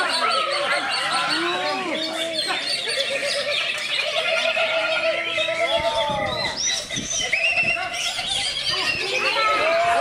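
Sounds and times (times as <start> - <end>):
many songbirds singing: 0.0 - 10.0
people's voices and calls: 0.0 - 10.0
bird whistling and trilling: 5.0 - 9.6.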